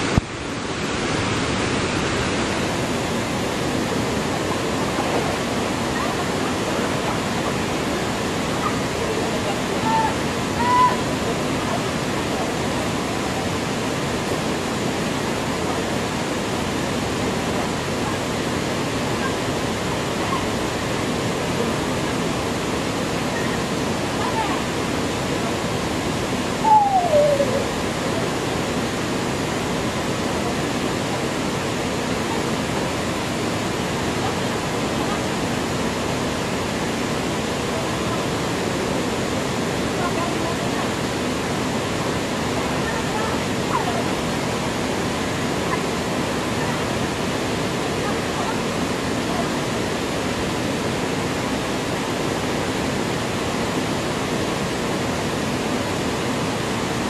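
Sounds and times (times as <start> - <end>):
small waterfall pouring over rocks: 0.0 - 57.0.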